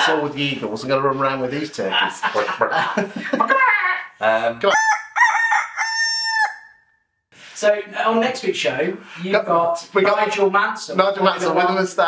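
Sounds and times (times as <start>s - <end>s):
man talking: 0.0s - 3.2s, 4.2s - 4.8s, 7.5s - 12.0s
fowl squawk: 4.8s - 6.8s.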